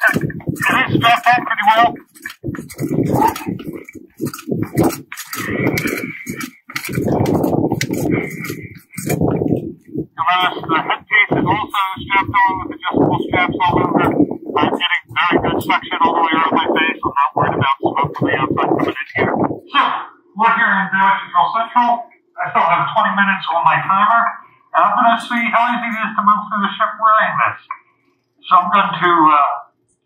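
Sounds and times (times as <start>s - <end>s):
man speaking muffled through mask: 0.0s - 9.4s, 10.0s - 27.8s, 28.4s - 29.7s
breathing through a mask: 2.0s - 9.8s, 24.4s - 24.7s.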